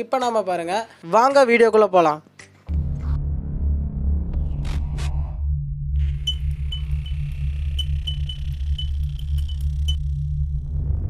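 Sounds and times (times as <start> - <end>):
deep bass pulse: 2.7 - 11.0
high electronic blips: 6.0 - 10.0.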